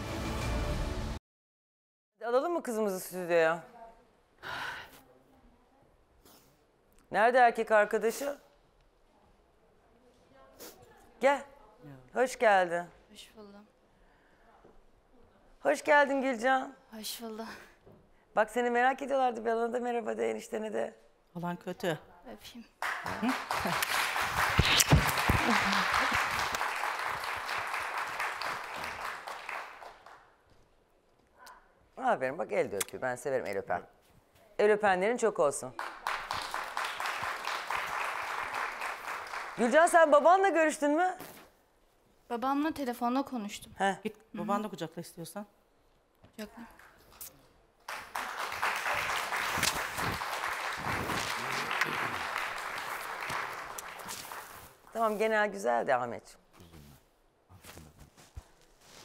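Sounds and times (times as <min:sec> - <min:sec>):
audience applauding: 0:22.8 - 0:30.2, 0:35.8 - 0:40.0, 0:47.9 - 0:54.8.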